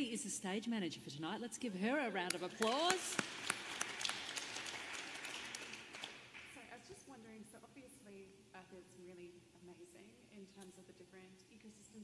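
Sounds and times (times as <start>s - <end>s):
audience applauding: 2.3s - 6.6s.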